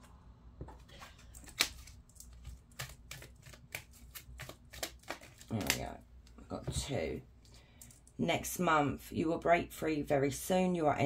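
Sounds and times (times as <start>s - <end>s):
playing cards being shuffled: 0.7s - 5.9s.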